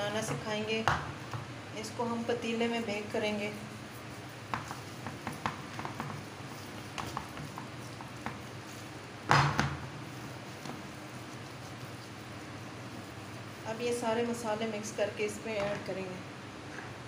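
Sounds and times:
hands kneading raw meat: 2.4s - 16.0s.

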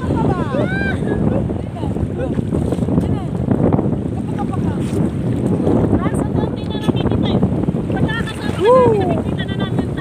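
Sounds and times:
sea water sloshing: 0.0s - 10.0s
wind rumble on microphone: 0.0s - 10.0s.

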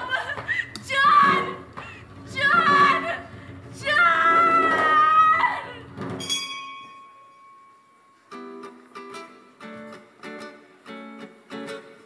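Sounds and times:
high ringing note: 6.2s - 8.2s.

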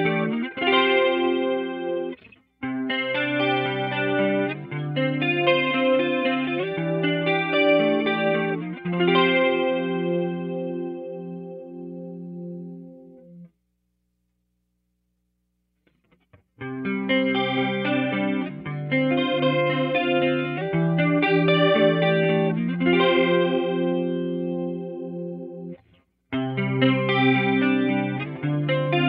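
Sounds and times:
electric guitar chords ringing: 0.0s - 13.5s, 16.6s - 29.0s.

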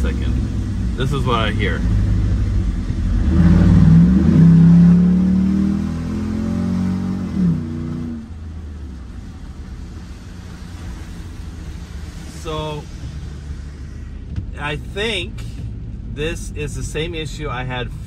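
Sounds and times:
loud exhaust: 0.0s - 8.4s
pickup truck engine accelerating: 0.0s - 16.2s.

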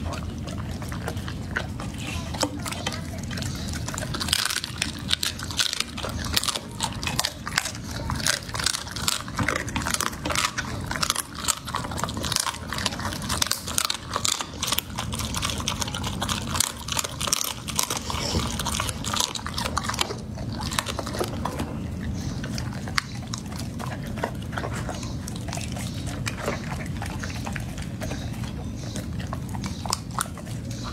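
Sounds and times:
dog gnawing a bone: 0.0s - 30.9s
low background hum: 0.0s - 30.9s
teeth clicks: 2.4s - 21.6s, 22.4s - 30.9s.

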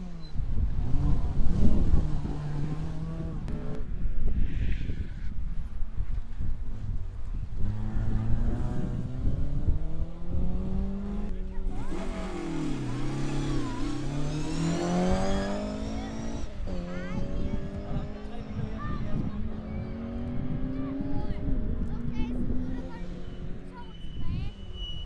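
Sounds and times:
rally car engines revving: 0.0s - 5.5s, 7.4s - 25.0s
car passing close: 7.6s - 24.5s.

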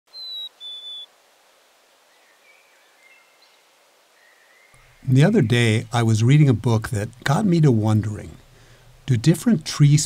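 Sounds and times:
bird whistling clear notes: 0.1s - 1.1s
distant bird chirps: 0.1s - 1.1s, 2.1s - 9.1s
faint outdoor hiss: 0.1s - 10.0s.

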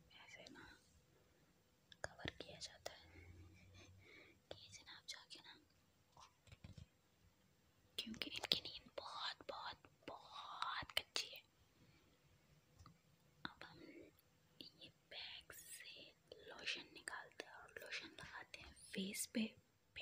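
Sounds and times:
soft whispering: 0.0s - 1.0s, 1.9s - 6.4s, 8.0s - 12.0s, 13.4s - 20.0s.

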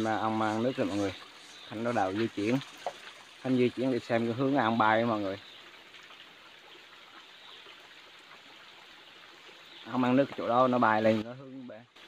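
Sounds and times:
stream trickling over rocks: 0.0s - 12.0s.

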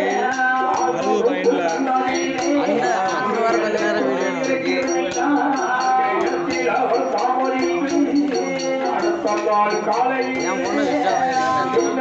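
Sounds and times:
jingling bells on bow: 0.0s - 12.0s
percussion beat: 0.0s - 12.0s.

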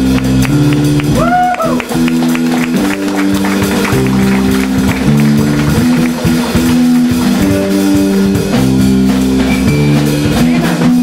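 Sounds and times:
drum kit and cymbals: 0.0s - 11.0s
electric bass: 0.0s - 11.0s
electric guitar: 0.0s - 11.0s.

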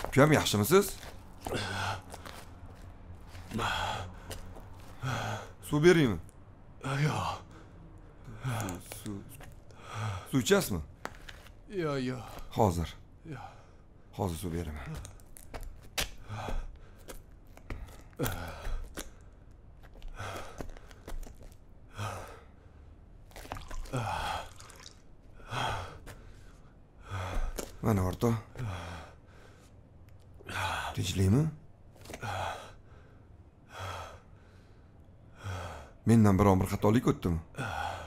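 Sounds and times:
man gasping breathily: 1.4s - 2.4s, 3.4s - 5.6s, 9.7s - 10.3s, 16.1s - 19.4s, 20.0s - 21.2s, 21.9s - 22.9s.

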